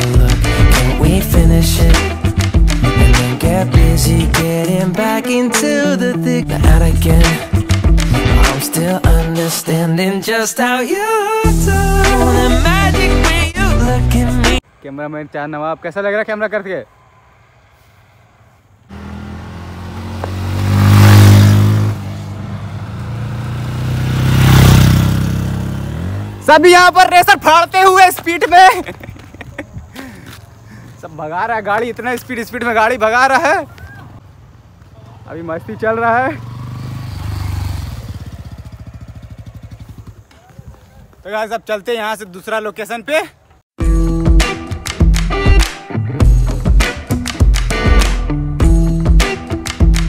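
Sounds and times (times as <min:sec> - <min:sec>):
motorcycles accelerating past: 0:18.9 - 0:26.4, 0:35.2 - 0:40.8.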